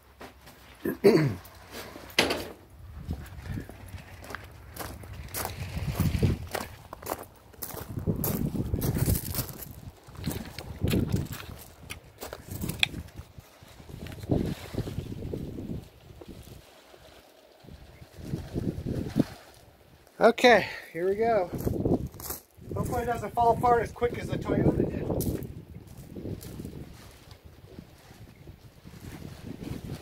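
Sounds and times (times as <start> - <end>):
footsteps crunching on gravel: 3.0 - 14.5, 21.4 - 23.4, 24.8 - 27.4.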